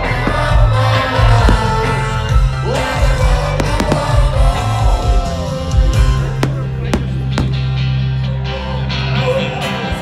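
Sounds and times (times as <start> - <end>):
firework bangs: 3.5 - 4.7, 6.4 - 7.8.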